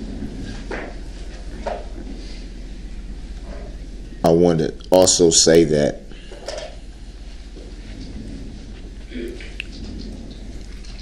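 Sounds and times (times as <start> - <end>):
low electrical hum: 0.0 - 11.0
faint breath or murmur: 6.0 - 11.0.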